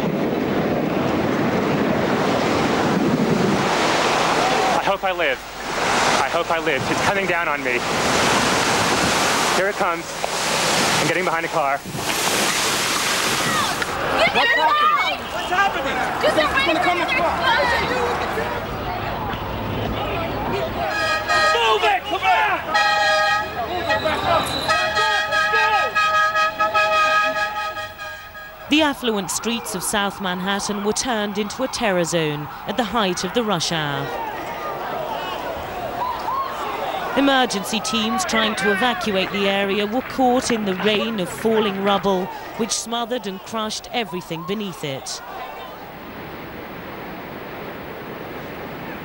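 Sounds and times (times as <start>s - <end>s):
people's voices: 13.3s - 46.0s
vehicle horn blasts: 20.8s - 29.1s.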